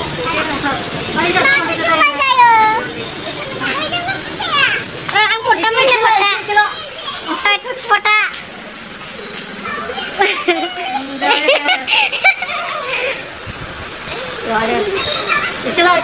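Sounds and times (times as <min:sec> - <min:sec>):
people talking and calling out: 0:00.0 - 0:16.0.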